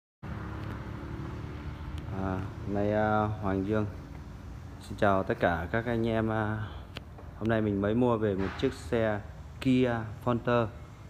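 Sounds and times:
diesel engine idling: 0:00.2 - 0:11.0.

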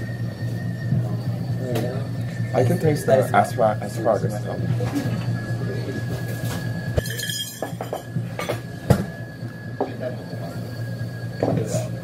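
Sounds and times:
low background hum: 0:00.0 - 0:12.0
dishes and cutlery clinking: 0:06.4 - 0:08.6.

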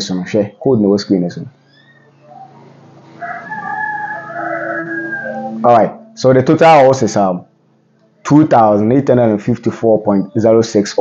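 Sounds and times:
rooster crowing: 0:01.8 - 0:06.2.

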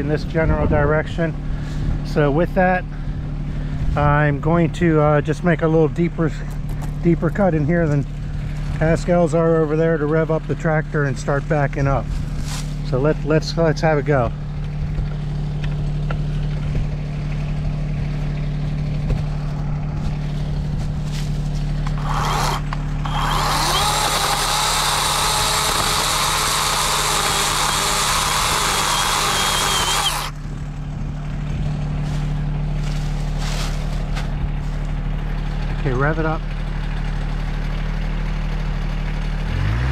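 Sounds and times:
tractor diesel engine idling: 0:00.0 - 0:39.5
chainsaw cutting wood: 0:21.8 - 0:30.4.

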